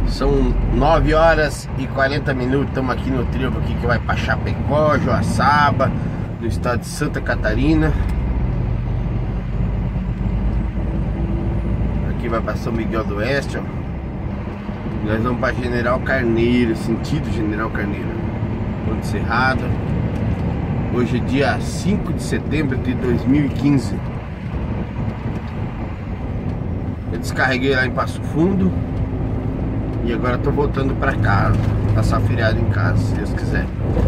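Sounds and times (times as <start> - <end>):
road noise: 0.0 - 34.0
truck diesel engine drone: 0.0 - 34.0.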